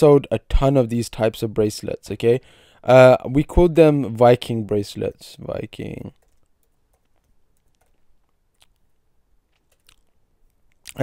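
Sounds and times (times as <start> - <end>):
typing on a computer keyboard: 6.1 - 8.7, 9.6 - 10.1.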